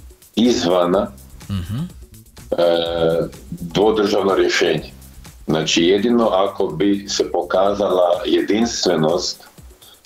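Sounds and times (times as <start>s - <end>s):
quiet background music: 0.0s - 10.0s
low throaty vocal sound: 1.4s - 3.8s
man speaking: 1.5s - 4.6s.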